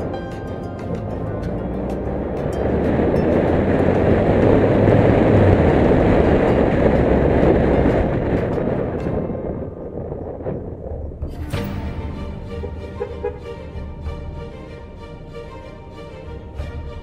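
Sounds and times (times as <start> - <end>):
large vehicle passing rumble: 0.0 - 17.0.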